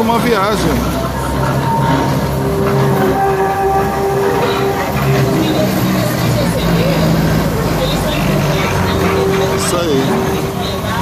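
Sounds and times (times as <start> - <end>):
passengers' voices: 0.0 - 11.0
tram motor hum: 0.0 - 11.0
tram wheels on rails: 0.0 - 11.0.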